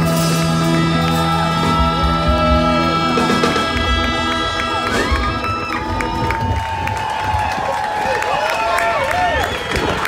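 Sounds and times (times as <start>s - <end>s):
live rock band playing: 0.0s - 6.6s
crowd cheering: 0.0s - 10.0s.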